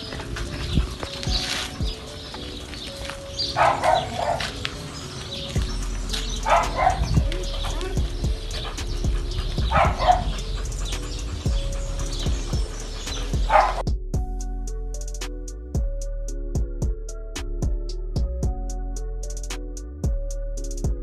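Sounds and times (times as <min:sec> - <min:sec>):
background music: 0:00.0 - 0:21.0
dog barking: 0:03.4 - 0:04.6, 0:06.2 - 0:13.8.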